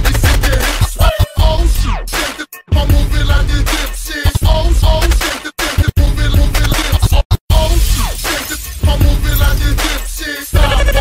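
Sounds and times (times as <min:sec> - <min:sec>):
hip hop music: 0:00.0 - 0:11.0
crash-like hit: 0:07.6 - 0:10.0.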